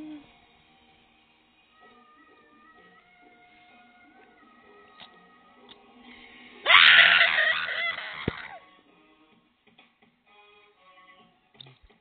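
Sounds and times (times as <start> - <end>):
faint music: 0.0 - 12.0
loud high-pitched scream: 6.6 - 8.6.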